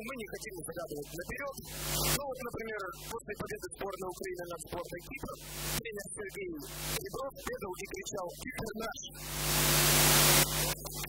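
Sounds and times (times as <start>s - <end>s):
loud static hiss: 1.6s - 2.2s, 5.4s - 5.8s, 6.6s - 7.0s, 9.2s - 11.0s
steady low hum: 9.2s - 11.0s.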